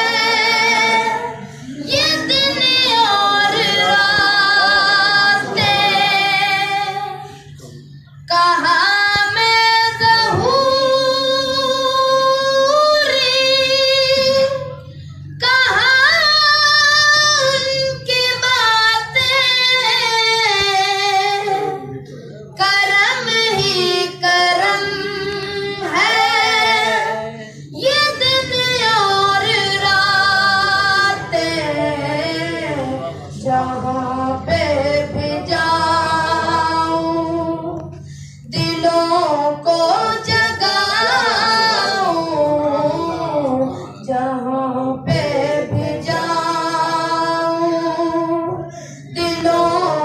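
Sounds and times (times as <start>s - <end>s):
person singing unaccompanied: 0.0s - 7.4s, 8.2s - 14.8s, 22.6s - 50.0s.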